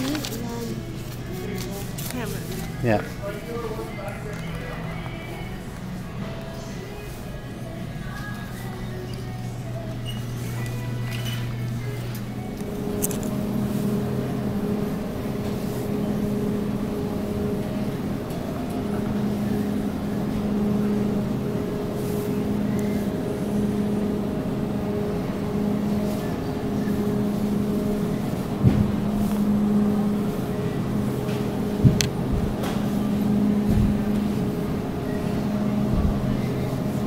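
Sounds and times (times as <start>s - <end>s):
low rumble and hum: 0.0s - 37.0s.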